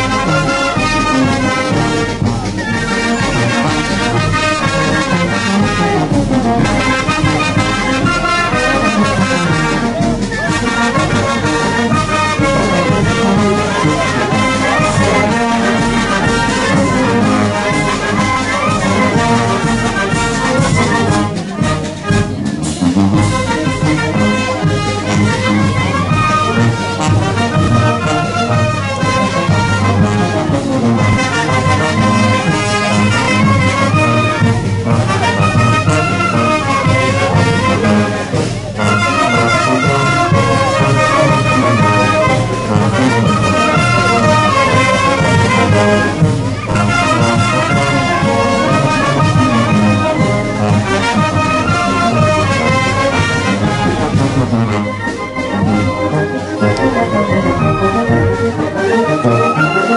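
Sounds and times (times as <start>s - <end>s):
brass band playing dance music: 0.0s - 59.9s.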